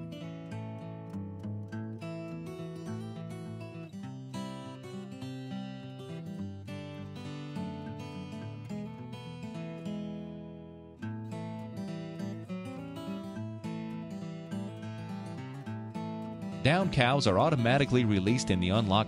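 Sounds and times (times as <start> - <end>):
acoustic guitar strummed and picked: 0.0 - 19.0.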